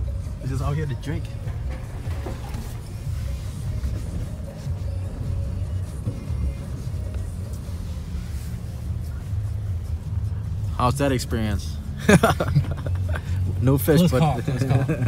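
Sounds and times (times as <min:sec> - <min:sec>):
truck engine and tyres rumbling: 0:00.0 - 0:15.0.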